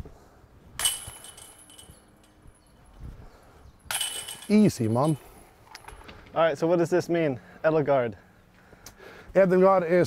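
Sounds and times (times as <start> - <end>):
discs striking metal chains: 0.8 - 2.8, 3.8 - 5.3.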